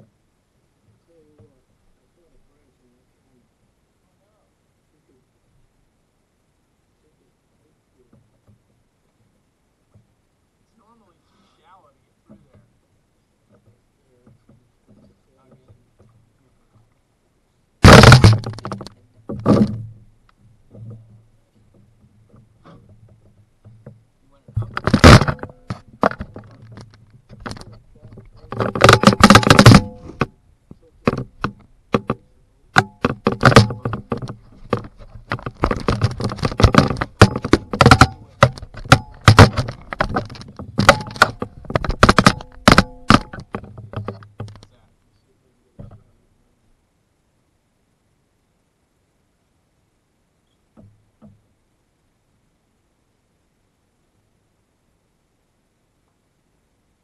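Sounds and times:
clicks and knocks on hull: 0:08.1 - 0:09.3, 0:13.4 - 0:17.0, 0:17.8 - 0:44.8, 0:45.8 - 0:46.2, 0:50.7 - 0:51.5
heavy thuds on canoe hull: 0:17.8 - 0:44.6.

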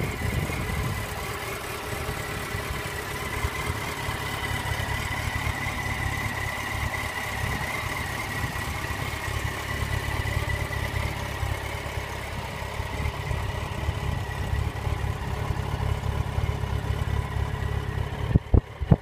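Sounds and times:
motorcycle engine idling: 0:00.0 - 0:19.0.

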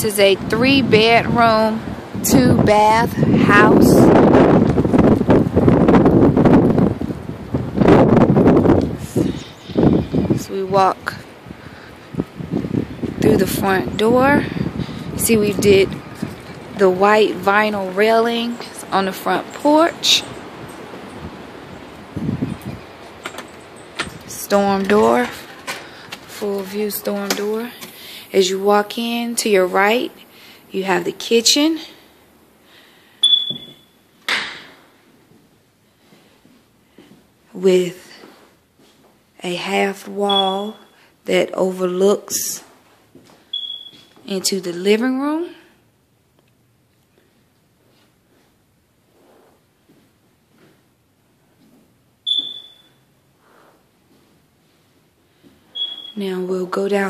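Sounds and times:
wind buffeting microphone: 0:00.0 - 0:27.6
high-pitched ping: 0:33.2 - 0:33.9, 0:40.3 - 0:40.7, 0:52.3 - 0:53.0.

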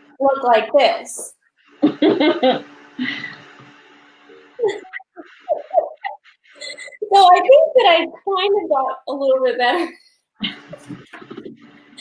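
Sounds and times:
woman laughing quietly: 0:04.6 - 0:08.0, 0:09.8 - 0:11.6.

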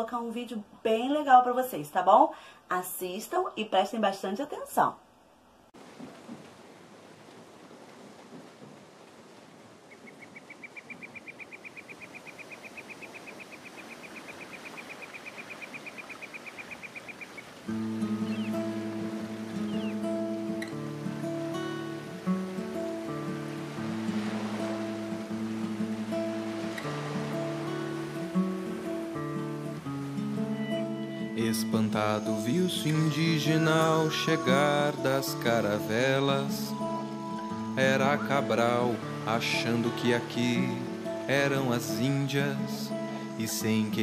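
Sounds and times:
sea waves hissing: 0:17.2 - 0:43.6
plucked acoustic guitar music: 0:17.6 - 0:44.0.

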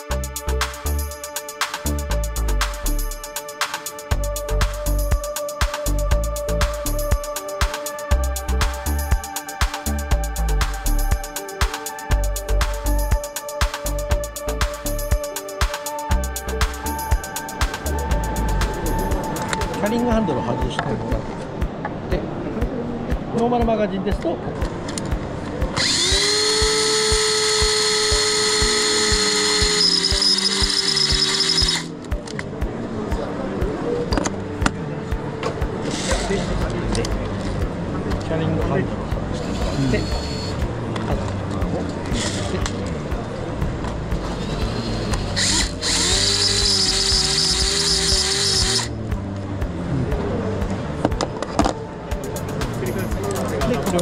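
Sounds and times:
electric motor whirring: 0:25.8 - 0:32.0, 0:39.4 - 0:40.6, 0:42.1 - 0:42.6, 0:44.2 - 0:48.9.

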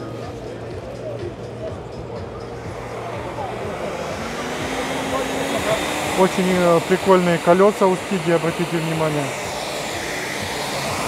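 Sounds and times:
distant voices murmuring: 0:00.0 - 0:11.0
low hum: 0:00.0 - 0:11.0.

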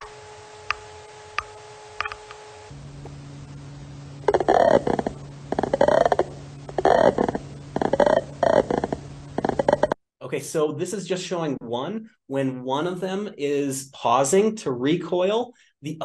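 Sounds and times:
steady hum: 0:00.0 - 0:14.4
slowed-down moth clicks: 0:04.3 - 0:10.0.

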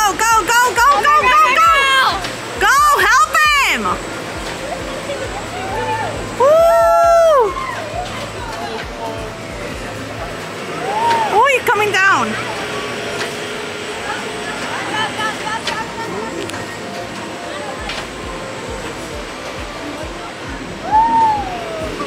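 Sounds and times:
faint voices: 0:00.0 - 0:22.0
outdoor background noise: 0:00.0 - 0:22.0.

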